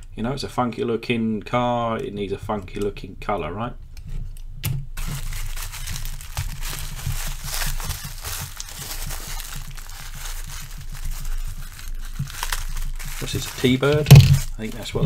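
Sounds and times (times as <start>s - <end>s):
bubble wrap crinkling: 4.9s - 15.0s.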